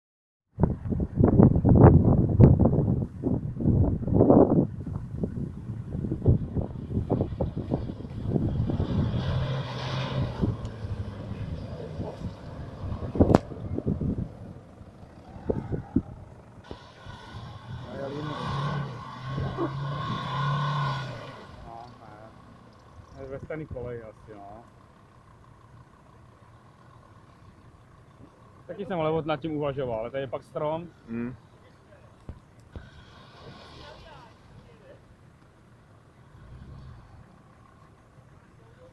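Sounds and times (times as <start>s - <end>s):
engines working at low speed: 4.8s - 38.9s
vehicles crawling through mud: 5.4s - 38.9s.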